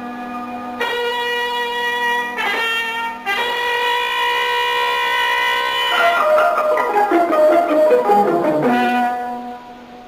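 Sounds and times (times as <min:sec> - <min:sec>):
brass holding a long note: 0:00.7 - 0:10.0
orchestra playing: 0:05.8 - 0:09.8.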